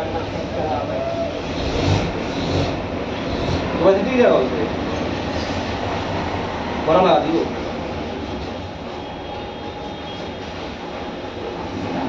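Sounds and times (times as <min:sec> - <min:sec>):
rasp scraping rubber: 0:01.6 - 0:03.8.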